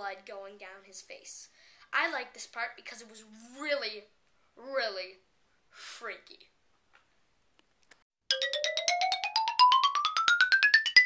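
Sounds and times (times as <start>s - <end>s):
fast rising repeated notes: 8.3s - 11.0s.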